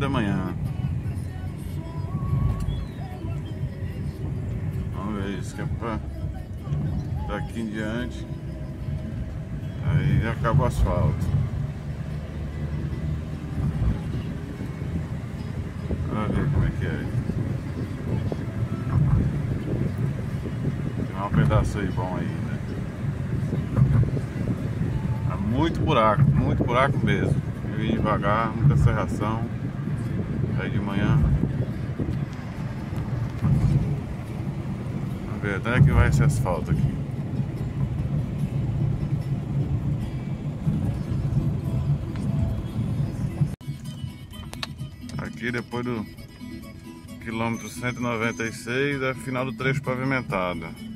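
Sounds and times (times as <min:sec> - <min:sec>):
car engine rumble: 0:00.0 - 0:50.9
faint music: 0:00.0 - 0:50.9
tyres on asphalt: 0:00.0 - 0:50.9.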